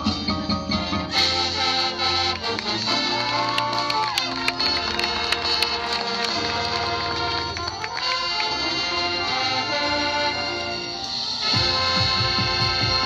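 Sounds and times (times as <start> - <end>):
brass and wind chords: 0.0 - 13.0.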